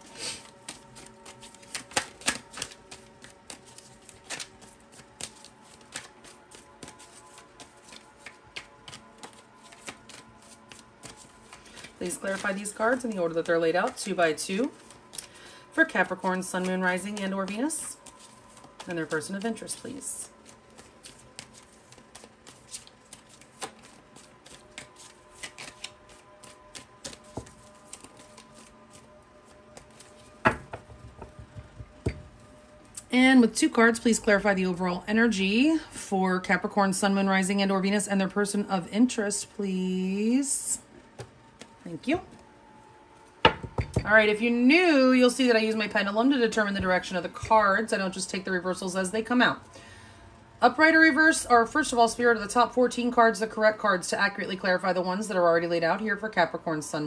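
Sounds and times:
cards being shuffled: 0.0s - 15.4s, 16.0s - 32.4s.

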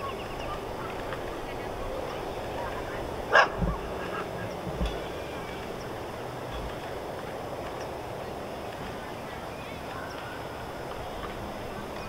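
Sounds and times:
steady outdoor hiss: 0.0s - 12.0s
low thumps: 3.4s - 4.0s.

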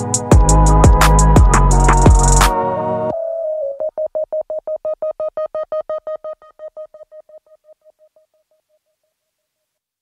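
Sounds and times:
repeated synthesizer beeps: 3.2s - 7.8s.

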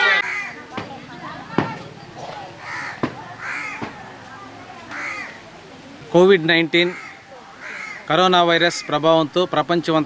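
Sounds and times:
crows cawing: 0.0s - 0.7s, 2.6s - 4.0s, 4.9s - 5.4s, 6.8s - 9.0s
faint murmur of voices: 0.0s - 10.0s.

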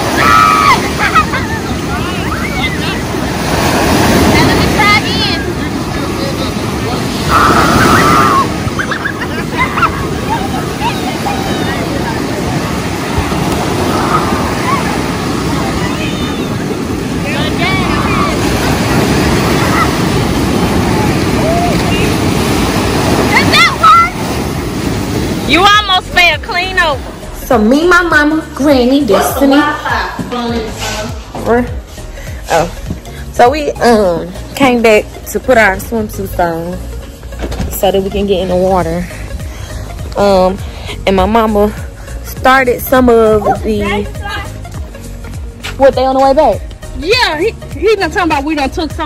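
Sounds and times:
wind buffeting microphone: 0.0s - 27.4s
ocean surf breaking: 0.0s - 28.6s
high voices calling out: 7.0s - 22.4s.

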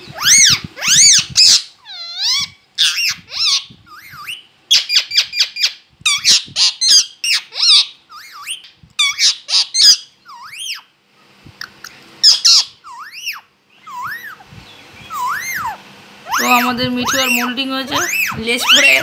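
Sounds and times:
parakeet squawking: 0.0s - 10.9s, 11.6s - 19.0s.

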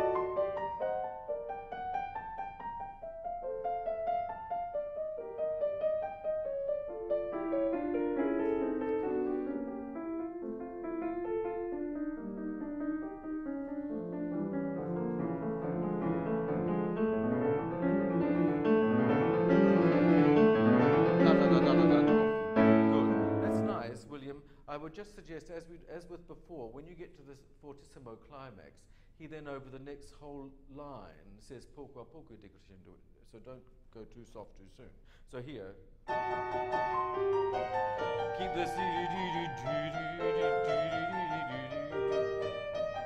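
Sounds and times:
grand piano playing: 0.0s - 24.1s, 36.1s - 43.0s.

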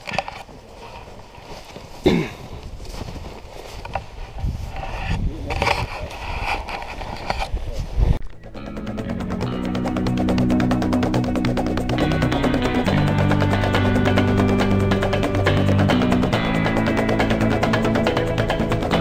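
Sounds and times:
footsteps crunching through snow: 0.2s - 8.2s
wind rumbling on microphone: 0.7s - 8.6s
background music with steady beat: 8.3s - 19.0s.

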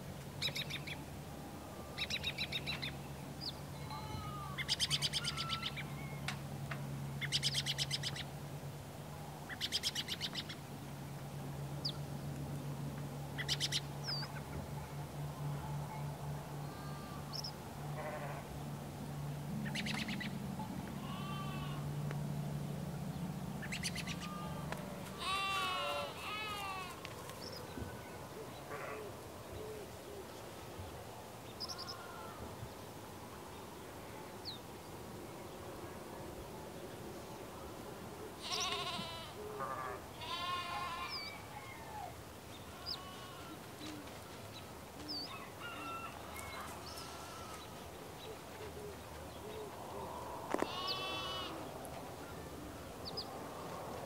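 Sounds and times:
steady low hum: 0.0s - 40.2s, 46.2s - 54.0s
farm animal calls: 3.8s - 6.3s, 16.6s - 18.5s, 19.6s - 22.0s, 23.5s - 30.3s, 31.6s - 32.4s, 38.2s - 54.0s
birds chirping: 23.1s - 32.2s, 38.4s - 39.5s, 42.5s - 53.9s.

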